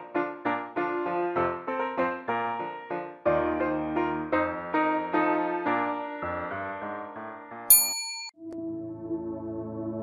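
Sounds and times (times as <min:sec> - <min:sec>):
piano music: 0:00.0 - 0:10.0
high-pitched bell ding: 0:07.7 - 0:08.4
soft ambient music: 0:08.4 - 0:10.0.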